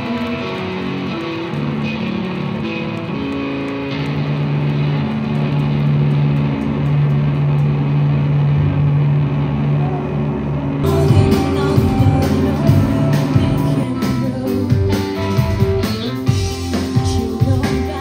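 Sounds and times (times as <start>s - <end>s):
live rock band playing slowly: 0.0s - 8.2s, 10.8s - 18.0s.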